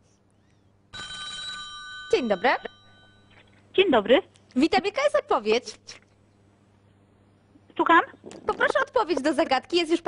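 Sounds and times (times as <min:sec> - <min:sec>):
electronic telephone ring tone: 0:00.9 - 0:03.6.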